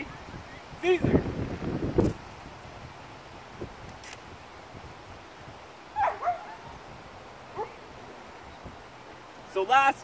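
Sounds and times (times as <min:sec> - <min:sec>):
dog yipping: 0:06.0 - 0:06.7.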